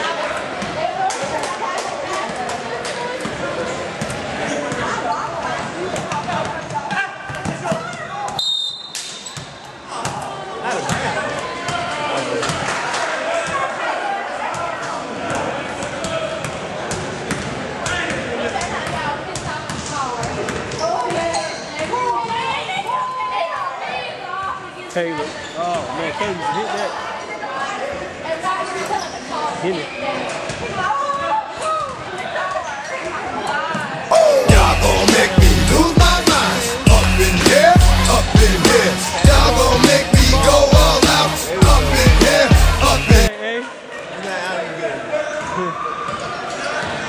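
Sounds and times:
players' voices and shouts echoing: 0.0s - 47.0s.

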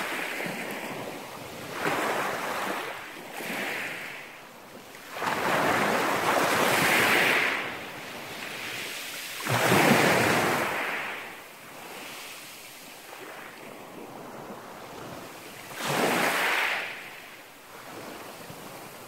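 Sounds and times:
waves washing up pebble beach: 0.0s - 4.2s, 5.1s - 13.5s, 15.6s - 17.2s.

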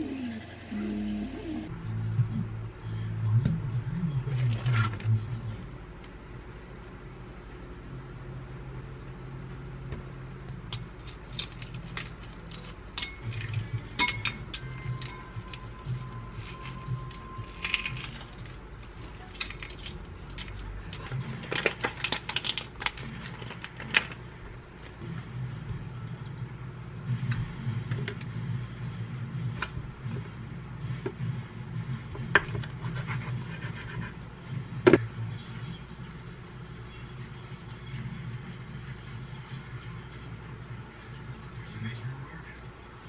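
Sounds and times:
low steady hum: 0.0s - 43.0s
egg shell crackling: 10.8s - 13.6s, 14.6s - 24.2s.

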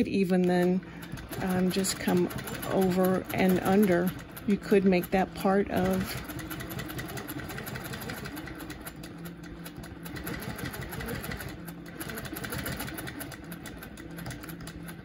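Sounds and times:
quilting machine stitching: 0.0s - 15.0s.

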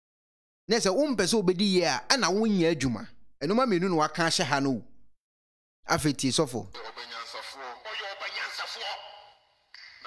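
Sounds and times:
man speaking loudly: 5.9s - 9.4s
preacher speaking over microphone: 5.9s - 9.4s.

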